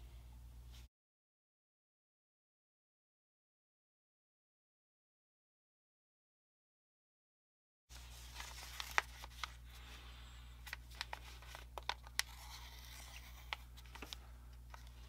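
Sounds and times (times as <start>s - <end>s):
faint low hum: 0.0s - 0.9s
paper crinkling: 7.9s - 15.0s.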